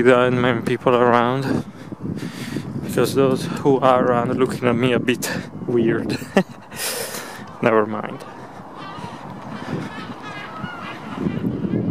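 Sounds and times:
birds calling: 3.8 - 11.9.

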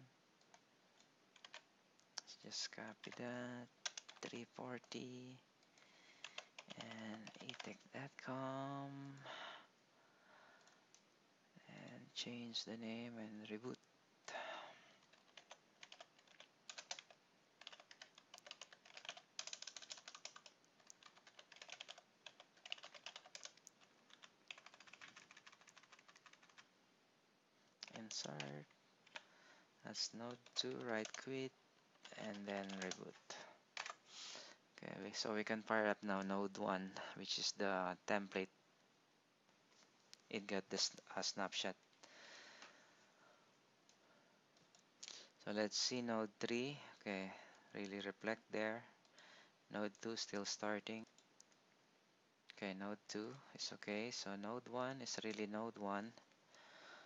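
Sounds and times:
typing on computer keyboard: 0.5 - 1.7, 3.8 - 4.4, 6.2 - 7.8, 15.0 - 26.7, 27.8 - 29.3, 30.3 - 31.3, 31.9 - 34.0
faint hiss: 2.0 - 15.2, 27.0 - 38.5.

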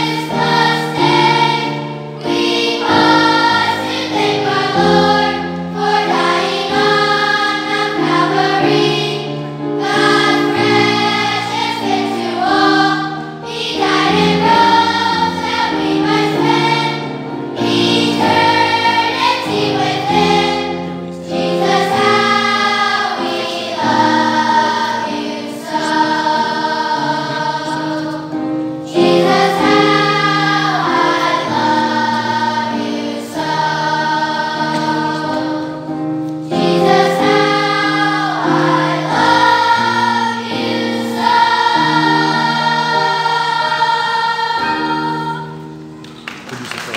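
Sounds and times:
children's choir singing: 0.0 - 46.0.

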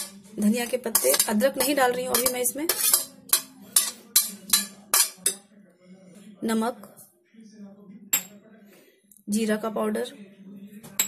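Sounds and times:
spoon scraping peas: 0.0 - 5.4
steel bowl and spoon clinking: 0.0 - 5.4.

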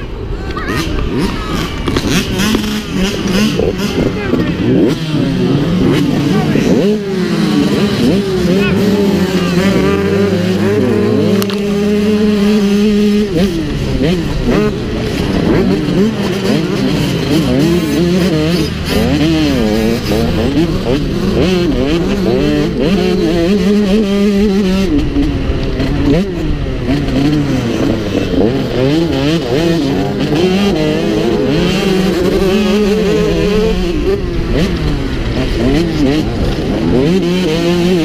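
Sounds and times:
motocross bike engine revving: 0.0 - 38.0
other motorbikes running: 0.0 - 38.0.

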